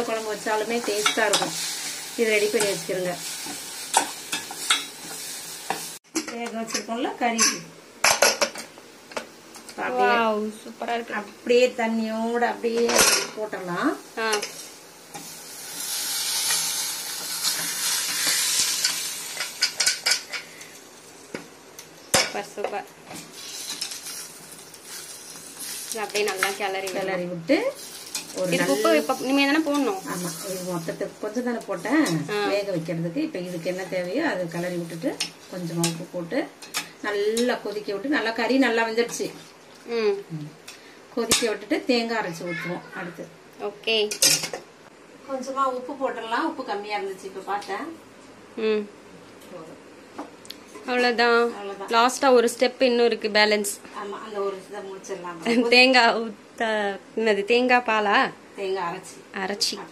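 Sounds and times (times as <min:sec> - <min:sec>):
stock sizzling in a hot pan: 0:00.0 - 0:06.1, 0:06.7 - 0:40.1.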